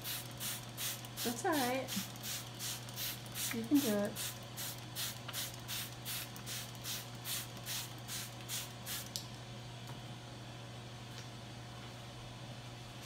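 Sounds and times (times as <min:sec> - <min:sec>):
spray bottle squirting water: 0:00.0 - 0:09.2.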